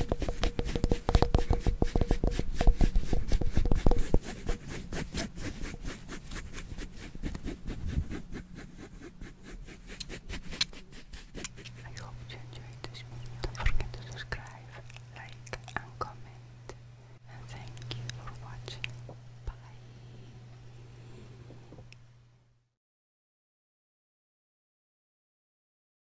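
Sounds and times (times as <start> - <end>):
low steady hum: 0.0 - 22.7
soft whispering: 11.7 - 21.7.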